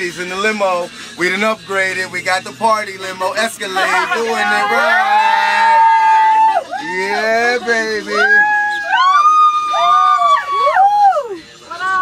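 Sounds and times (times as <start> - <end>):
women whooping and screaming: 4.3 - 7.4, 8.0 - 12.0.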